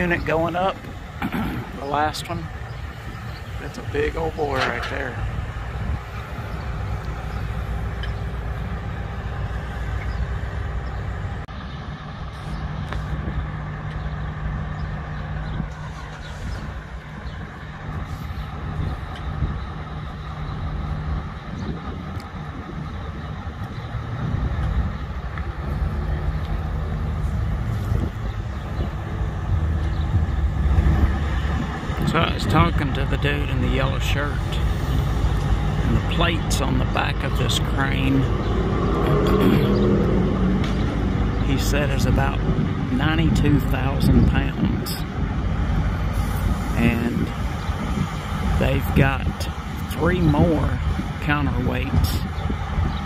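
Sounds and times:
large diesel engine running: 0.0 - 53.0.

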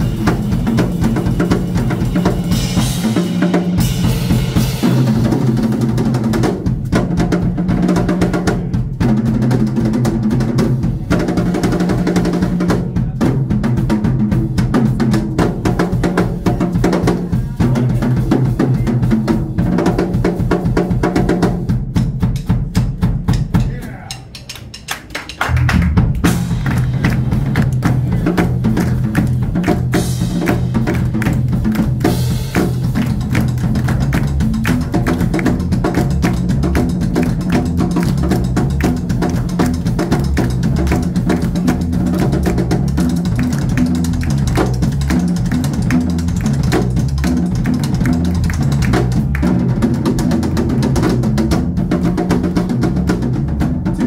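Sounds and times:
drum kit played fast: 0.0 - 54.0
electric bass line: 25.6 - 54.0.

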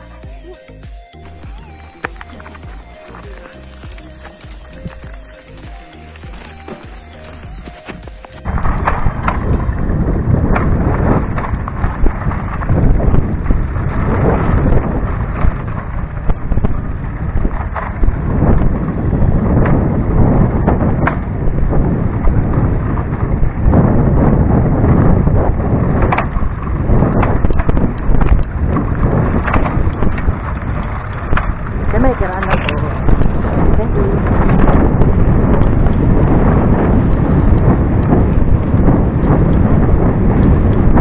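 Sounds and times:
bike rattling over stones: 1.2 - 41.0
wind buffeting microphone: 1.4 - 41.0.

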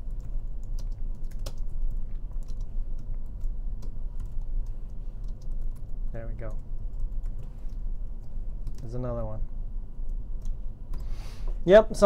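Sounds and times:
keyboard typing clicks: 0.0 - 8.9, 10.0 - 11.1
low steady hum: 0.0 - 12.0.

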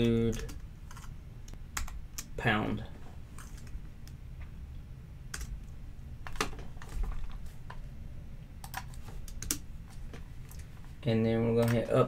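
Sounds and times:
keyboard typing: 0.0 - 1.1, 8.6 - 9.6
faint low hum: 0.0 - 12.0.

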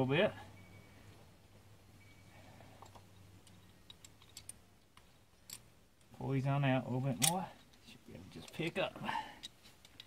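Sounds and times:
metal parts clicking: 2.8 - 4.6.

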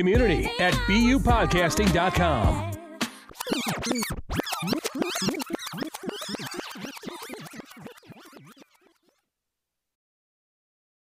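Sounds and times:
turntable scratching: 0.5 - 9.2.

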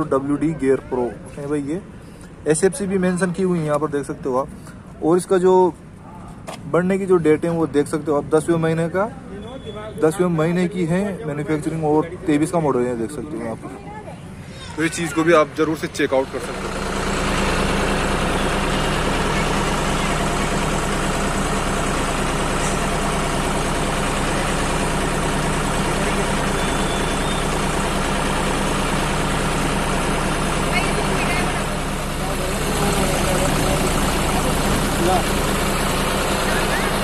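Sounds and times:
diesel tractor engine idling: 0.0 - 37.0
voices in background: 30.1 - 37.0.

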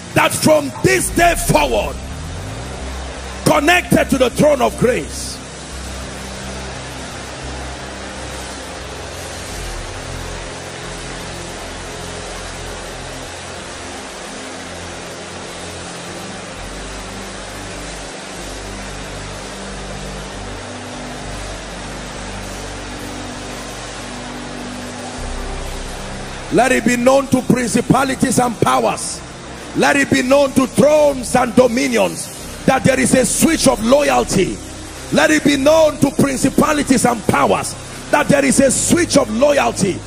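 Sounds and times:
congregation praying aloud: 0.0 - 2.3, 3.4 - 5.4, 26.5 - 40.0
soft held musical chords: 0.0 - 40.0.

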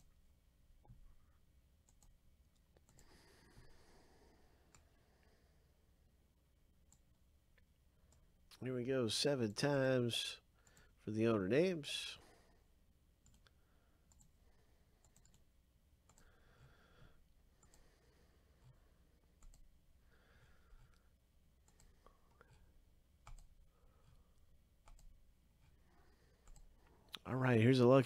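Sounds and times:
faint computer mouse clicks: 15.0 - 16.3.

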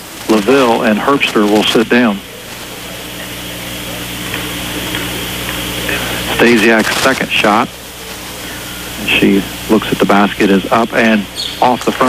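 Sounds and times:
crowd haze: 0.0 - 12.0
low steady hum: 0.0 - 12.0.

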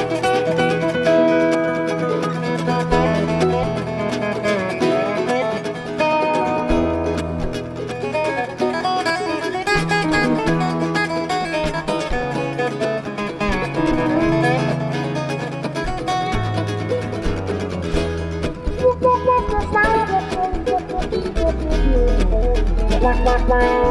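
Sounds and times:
bluegrass band playing: 0.0 - 23.9
dobro slide notes: 0.0 - 23.9
bass line: 15.9 - 23.9.

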